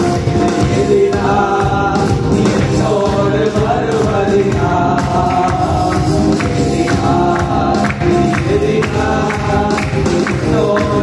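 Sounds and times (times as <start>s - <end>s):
men singing into a microphone: 0.0s - 11.0s
steady beat: 0.0s - 11.0s.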